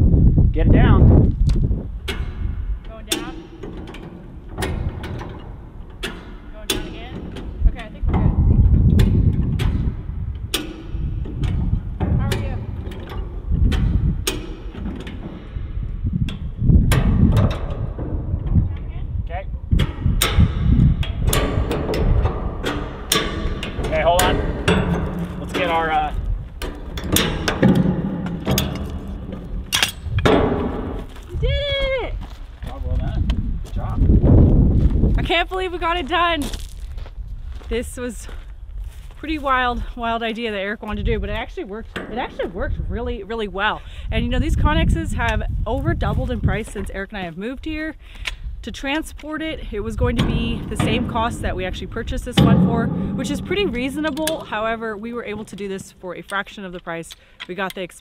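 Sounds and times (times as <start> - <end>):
jack clacking metallically: 1.9 - 31.3, 48.8 - 58.0.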